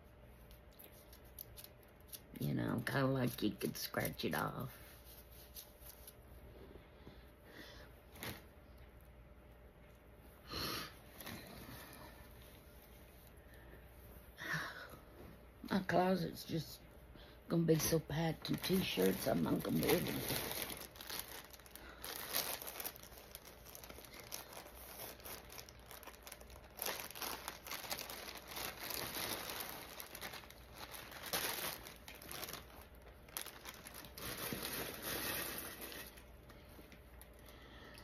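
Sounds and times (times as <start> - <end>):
plastic packaging crinkling: 17.8 - 36.5.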